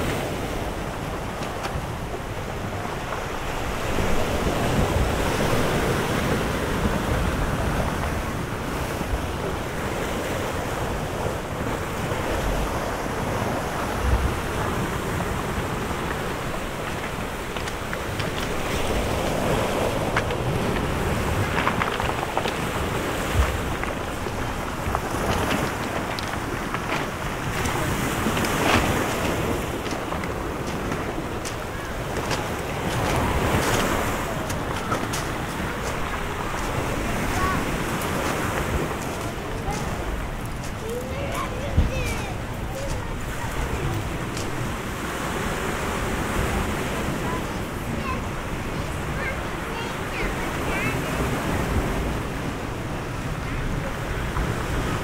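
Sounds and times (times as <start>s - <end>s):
waves washing onto pebble beach: 0.0s - 55.0s
wind buffeting microphone: 0.0s - 55.0s.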